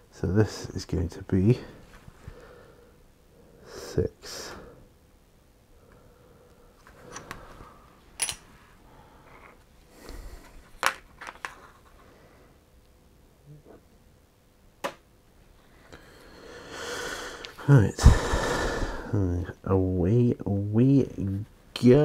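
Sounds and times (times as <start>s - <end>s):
soft scraping and shuffling: 1.4s - 2.4s, 20.8s - 22.0s.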